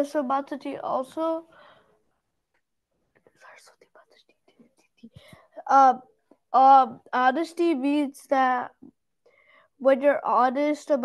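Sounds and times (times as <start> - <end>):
person whispering: 3.3 - 5.6.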